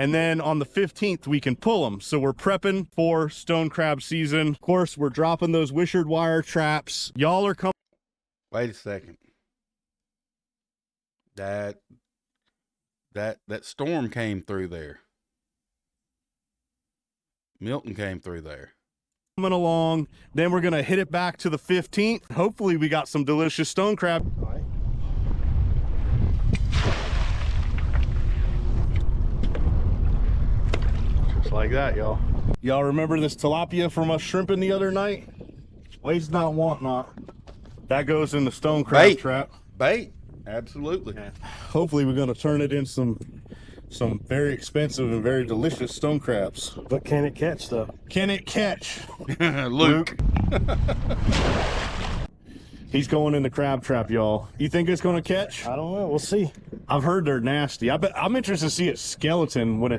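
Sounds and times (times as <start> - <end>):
man's voice: 13.2 - 15.0, 38.0 - 43.2, 44.0 - 50.7
wind rumbling on microphone: 24.2 - 54.5, 55.2 - 58.9
trap splashing into water: 26.3 - 28.6, 51.1 - 52.3.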